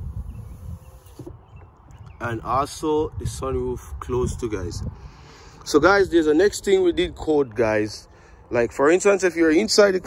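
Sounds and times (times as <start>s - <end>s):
wind rumble on microphone: 0.0s - 8.8s.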